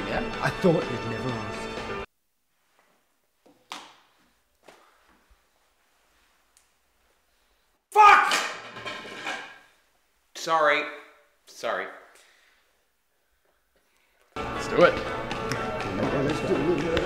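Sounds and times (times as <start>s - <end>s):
man speaking loudly: 7.9s - 8.5s, 10.4s - 12.1s.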